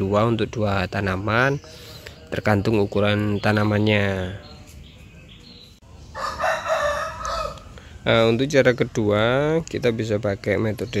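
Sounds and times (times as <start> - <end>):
rooster crowing: 6.1 - 7.9.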